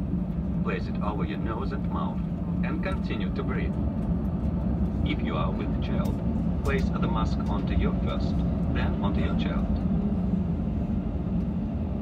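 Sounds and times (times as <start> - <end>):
aircraft cabin engine rumble: 0.0 - 12.0
wheels rolling on taxiway: 0.0 - 12.0.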